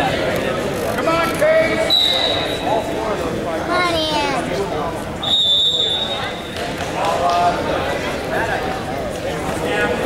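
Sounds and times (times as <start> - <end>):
high whistle tone: 1.9 - 2.7, 5.2 - 6.4.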